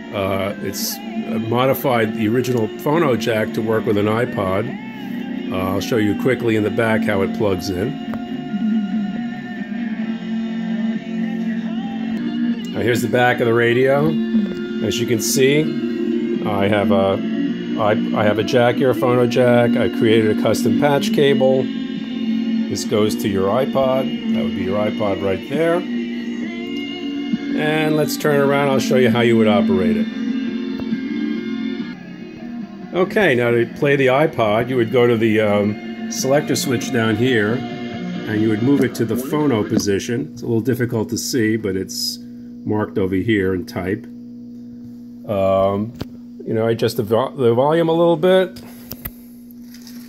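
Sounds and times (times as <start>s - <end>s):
guitar music through radio speaker: 0.0s - 50.0s.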